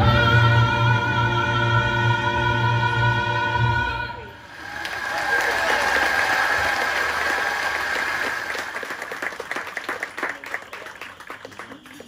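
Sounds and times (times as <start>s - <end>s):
guests applauding: 4.5s - 12.0s
voices cheering: 4.5s - 12.0s.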